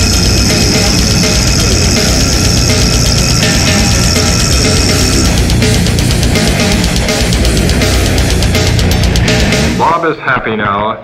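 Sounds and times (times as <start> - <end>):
cymbal wash: 0.0 - 9.7
death metal band playing: 0.0 - 10.4.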